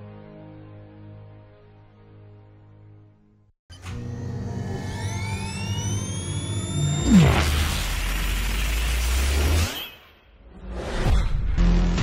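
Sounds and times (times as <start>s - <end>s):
high tones rising in pitch: 4.6s - 10.0s.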